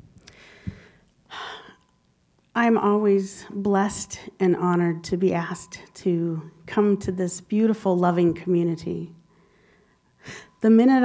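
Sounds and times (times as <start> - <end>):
breathing into microphone: 0.3 - 1.6, 9.3 - 10.6.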